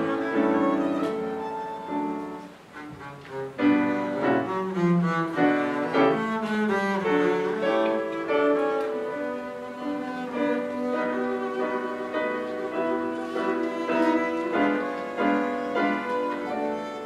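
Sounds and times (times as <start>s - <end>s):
bowed double bass melody: 0.0s - 17.0s
grand piano: 0.0s - 17.0s.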